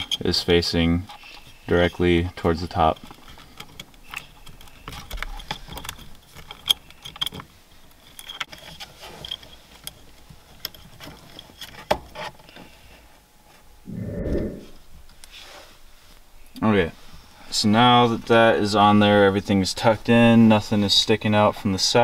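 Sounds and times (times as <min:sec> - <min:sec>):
light clicks taps and scrapes: 0:00.0 - 0:13.6
brief low sound: 0:13.9 - 0:14.8.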